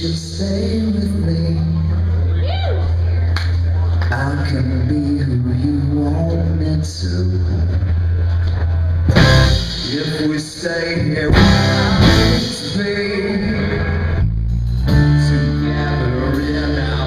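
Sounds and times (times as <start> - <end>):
man singing: 0.0 - 2.2, 4.1 - 7.9, 9.5 - 14.2, 14.9 - 17.0
live rock band playing: 7.6 - 17.0
loud accented band hits: 9.1 - 14.1.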